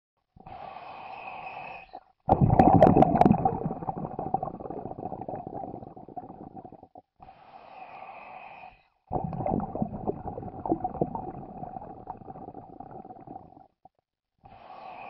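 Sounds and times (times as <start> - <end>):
underwater bubbling and gurgling: 2.3 - 7.0, 9.1 - 13.9.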